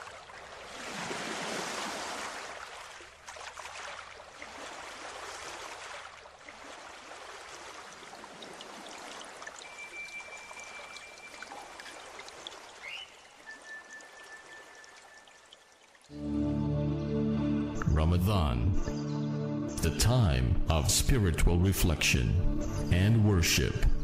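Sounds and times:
trickling water: 0:00.0 - 0:16.2
thin steady whistle tone: 0:09.6 - 0:15.7.

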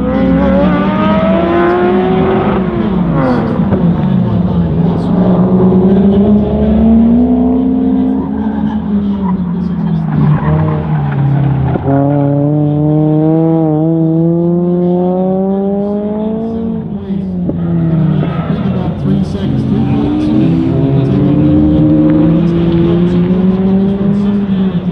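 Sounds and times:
car engine revving: 0:00.0 - 0:24.9.

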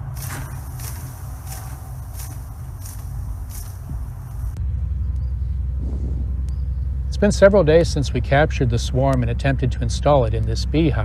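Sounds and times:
leafy branch rustling: 0:00.0 - 0:04.6
low rumble: 0:00.0 - 0:11.0.

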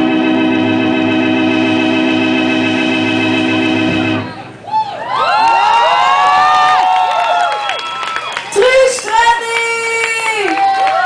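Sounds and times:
organ-like chord: 0:00.0 - 0:04.4
audience cheering and shouting: 0:04.4 - 0:09.0.

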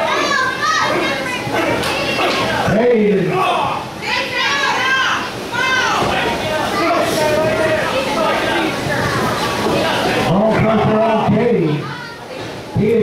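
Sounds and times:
children shouting in echoing hall: 0:00.0 - 0:02.7
adult shouting: 0:00.0 - 0:06.0.

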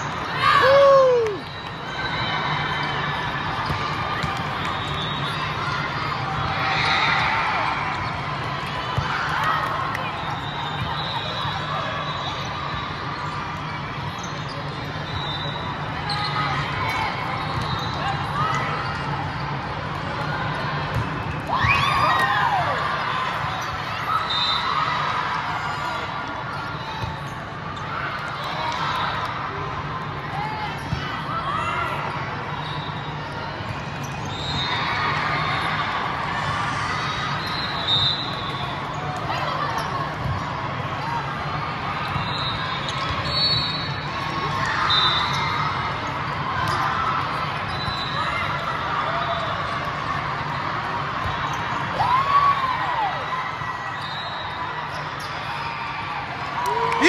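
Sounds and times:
murmur of crowd voices: 0:00.0 - 0:57.0
shoes squeaking on court: 0:13.6 - 0:16.6.

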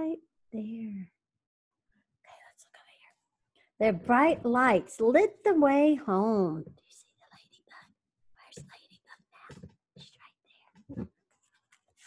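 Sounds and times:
woman whispering: 0:00.0 - 0:01.2, 0:02.3 - 0:03.2, 0:06.7 - 0:11.0.

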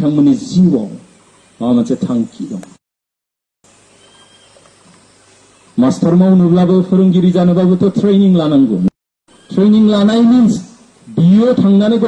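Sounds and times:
background hiss: 0:00.0 - 0:02.8, 0:03.6 - 0:12.0
man speaking loudly: 0:05.8 - 0:12.0.

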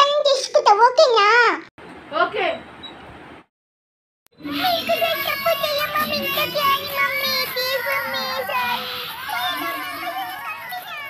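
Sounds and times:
high child-like singing voice: 0:04.4 - 0:11.0.

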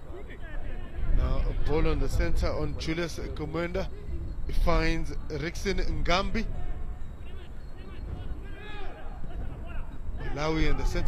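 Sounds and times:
broadcast commentary: 0:00.0 - 0:11.0
low rumble of field ambience: 0:00.0 - 0:11.0
faint voices calling out: 0:02.6 - 0:11.0.

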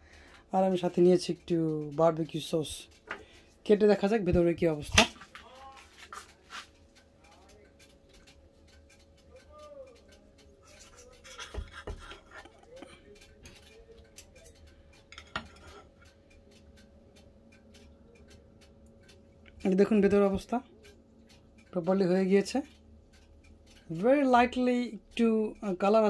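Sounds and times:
metal clicking on plate: 0:04.0 - 0:16.9.

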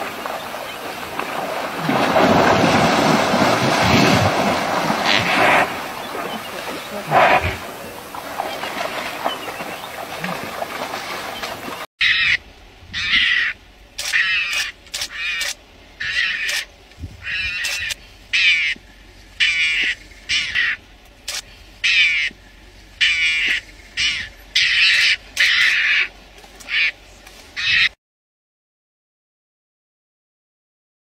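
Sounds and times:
animal short calls: 0:07.0 - 0:07.6.

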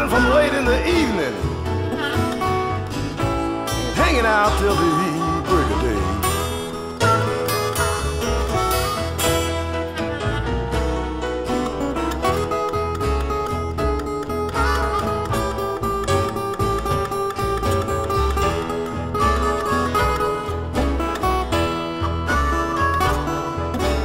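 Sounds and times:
blues guitar: 0:00.0 - 0:24.0.

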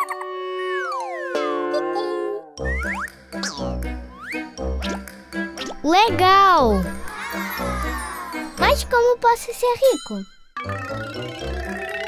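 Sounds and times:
upbeat children's music: 0:00.0 - 0:12.0.

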